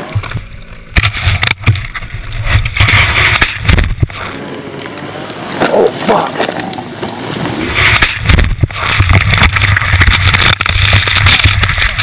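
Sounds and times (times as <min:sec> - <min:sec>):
avalanche snow rushing: 0:02.4 - 0:12.0.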